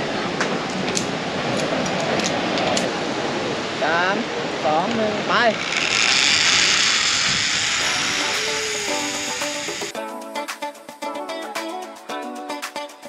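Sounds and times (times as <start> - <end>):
zipline trolley whirring on cable: 4.8 - 10.0.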